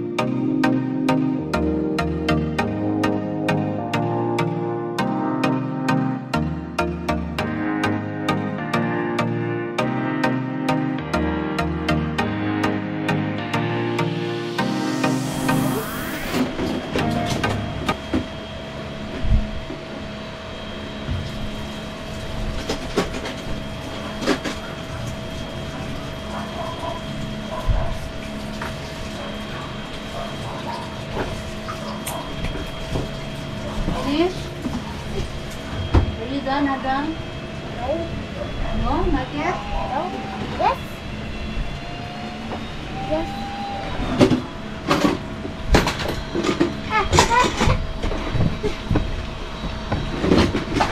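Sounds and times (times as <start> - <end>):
steady hum: 0.0 - 50.9.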